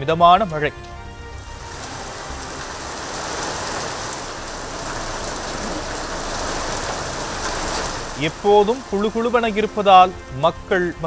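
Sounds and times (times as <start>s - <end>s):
rain on a wet road: 0.9s - 11.0s.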